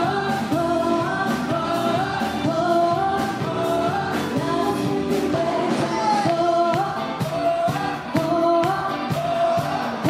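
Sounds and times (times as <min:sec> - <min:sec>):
dance music with singing: 0:00.0 - 0:10.0.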